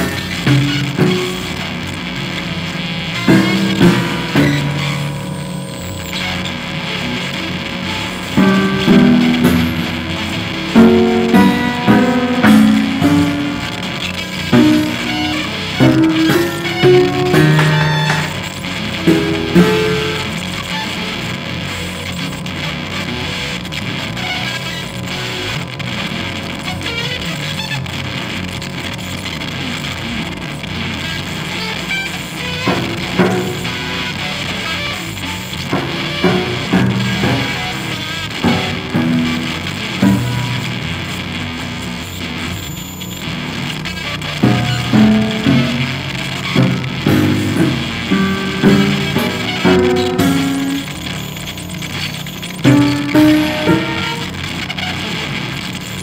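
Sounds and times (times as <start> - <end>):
dense electronic noise: 0.0 - 56.0
electric guitar notes: 0.0 - 56.0
prepared piano notes: 8.1 - 20.5, 44.4 - 51.3.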